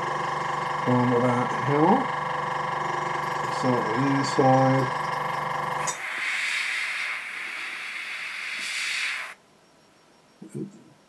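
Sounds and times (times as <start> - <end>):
airbrush hissing: 5.8 - 9.4.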